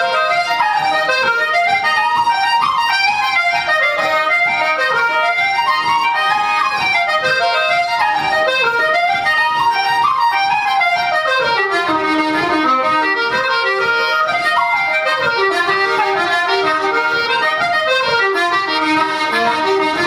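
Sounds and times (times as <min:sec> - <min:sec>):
button accordion: 0:00.0 - 0:20.0
fiddle: 0:00.0 - 0:20.0
flute: 0:00.0 - 0:20.0.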